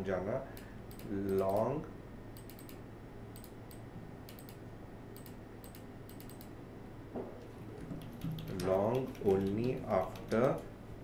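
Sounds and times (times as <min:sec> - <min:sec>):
keyboard key clicks: 0:08.0 - 0:10.6.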